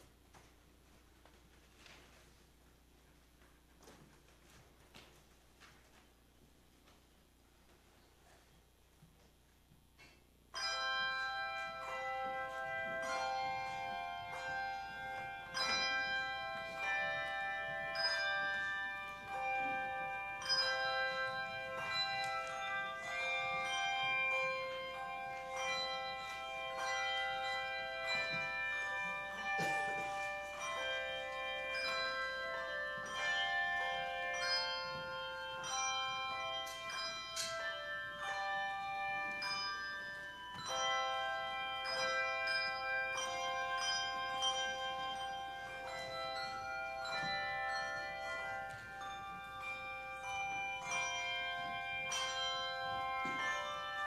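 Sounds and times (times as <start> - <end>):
handbell choir playing: 10.5 - 54.0.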